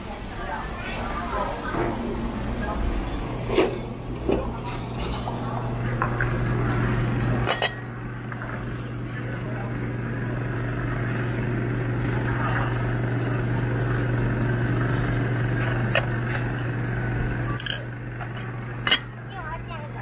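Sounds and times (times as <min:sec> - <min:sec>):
indistinct chatter: 0:00.0 - 0:20.0.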